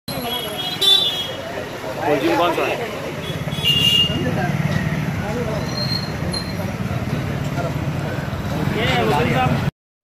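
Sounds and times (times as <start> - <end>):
street traffic: 0.1 - 9.7
vehicle horn: 3.2 - 4.2.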